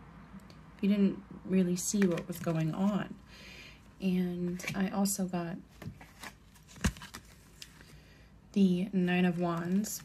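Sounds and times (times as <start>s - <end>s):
cards clicking and rustling: 1.9s - 3.0s, 5.8s - 8.0s.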